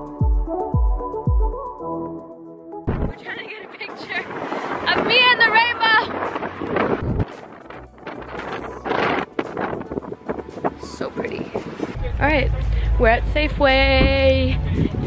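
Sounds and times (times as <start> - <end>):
wind buffeting microphone: 2.9 - 15.0.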